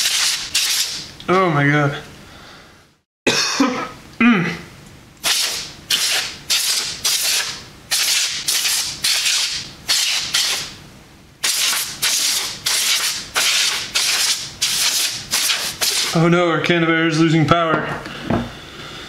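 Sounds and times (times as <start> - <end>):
compressed air spray bursts: 0.0 - 1.0, 5.2 - 10.7, 11.4 - 16.2.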